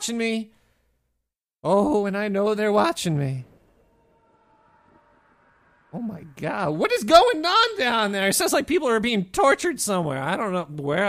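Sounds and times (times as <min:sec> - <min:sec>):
man's voice: 0:06.0 - 0:11.0.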